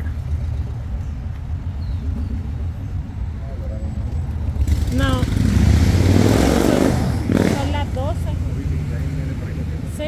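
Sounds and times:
cars passing with low rumble: 0:00.0 - 0:10.0.

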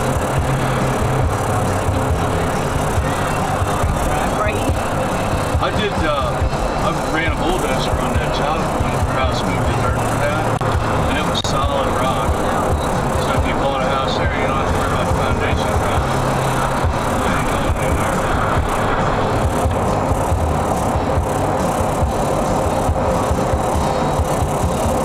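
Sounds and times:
car road rumble: 0:00.0 - 0:25.0
music playing: 0:00.0 - 0:25.0.

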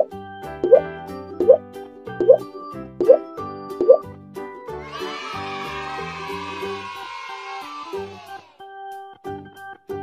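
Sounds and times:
rising bloop sound effect: 0:00.0 - 0:01.6, 0:02.2 - 0:02.4, 0:03.0 - 0:03.2, 0:03.8 - 0:04.0
children's background music: 0:00.0 - 0:10.0.

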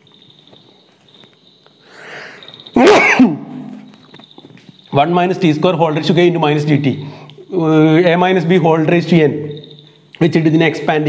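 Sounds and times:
breathy intake: 0:01.8 - 0:02.6
man sneezing: 0:02.8 - 0:03.7.

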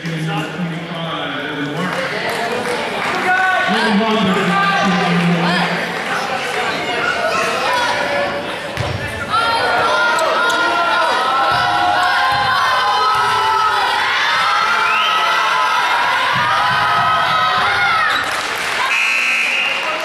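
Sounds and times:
crowd cheering and yelling: 0:01.5 - 0:20.0
basketball bouncing on court: 0:08.8 - 0:09.1, 0:11.4 - 0:13.5, 0:16.2 - 0:18.0.

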